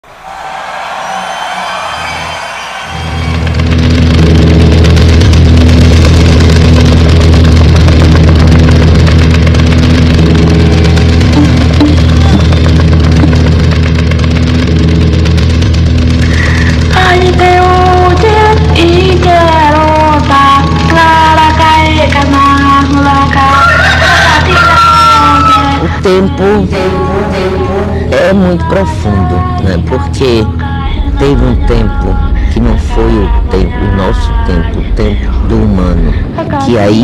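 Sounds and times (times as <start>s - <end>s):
deep bass drone: 1.3s - 37.0s.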